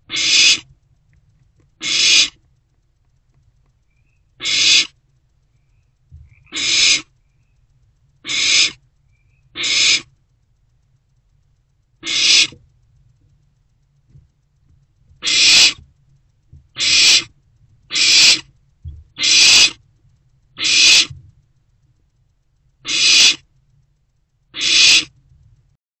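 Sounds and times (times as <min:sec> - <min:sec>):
owlets hissing calls: 0:00.0 - 0:00.7, 0:01.8 - 0:02.4, 0:04.2 - 0:05.0, 0:06.4 - 0:07.1, 0:08.2 - 0:08.8, 0:09.4 - 0:10.1, 0:12.0 - 0:12.6, 0:15.2 - 0:15.8, 0:16.8 - 0:17.3, 0:17.9 - 0:18.5, 0:19.2 - 0:19.8, 0:20.6 - 0:21.2, 0:22.8 - 0:23.5, 0:24.6 - 0:25.2.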